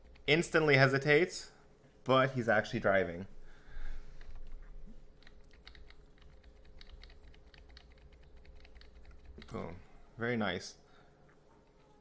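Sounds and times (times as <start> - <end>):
faint steady hum: 0.0 - 12.0
computer keyboard clicks: 5.2 - 9.6.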